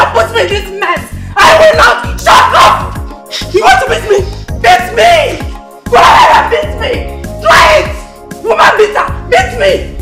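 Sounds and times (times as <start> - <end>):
background music with bass: 0.0 - 10.0
people shouting in argument: 1.4 - 9.8.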